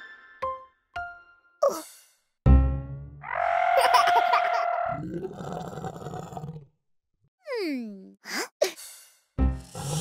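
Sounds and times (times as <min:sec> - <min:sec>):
cartoon dinosaur roar: 0:03.2 - 0:06.7, 0:09.6 - 0:10.0.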